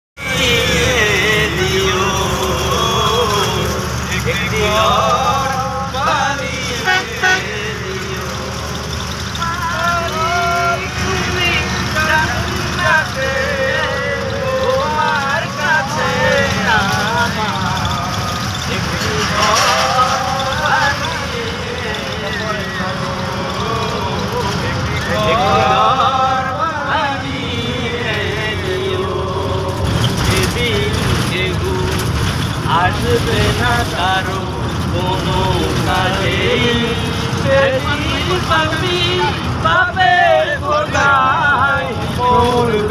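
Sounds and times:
bus engine low rumble: 0.2s - 42.9s
passengers' voices: 0.2s - 42.9s
road noise: 0.2s - 42.9s
men talking: 14.2s - 27.4s.

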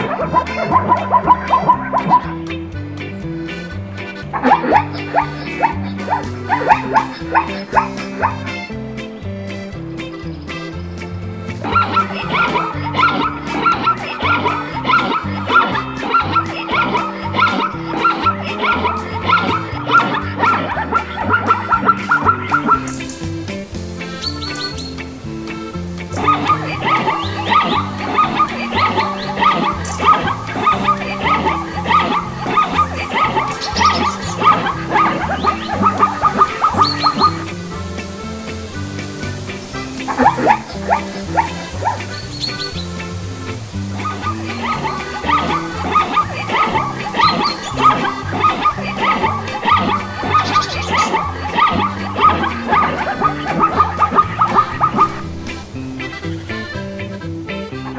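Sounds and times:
zebra yipping barks: 0.0s - 9.1s, 11.5s - 57.9s
background music: 0.0s - 57.9s.

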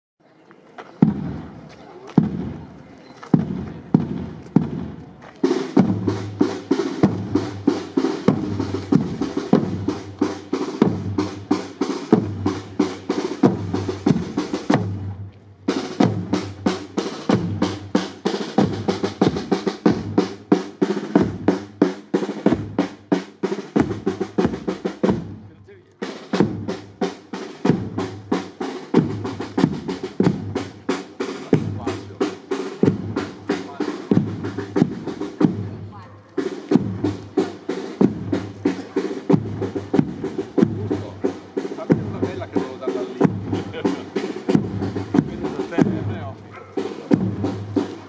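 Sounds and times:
snare drum beats and rolls: 1.0s - 2.7s, 3.3s - 48.0s
bass drum strokes: 27.6s - 48.0s.

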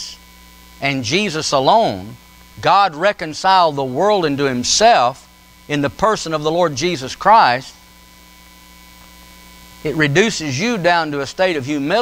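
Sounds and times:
electrical hum: 0.0s - 12.0s
faint steady tones: 0.0s - 12.0s
man speaking: 0.8s - 7.8s, 9.8s - 12.0s.

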